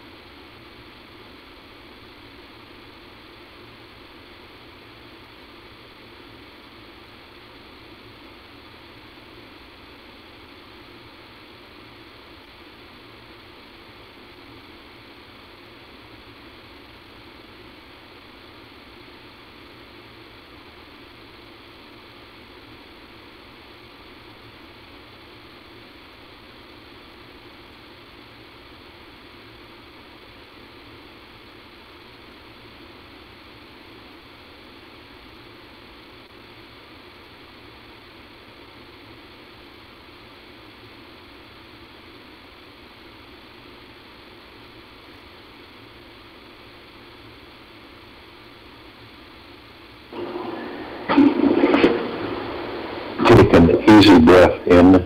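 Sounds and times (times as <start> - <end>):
telephone line hiss and hum: 0.0 - 55.0.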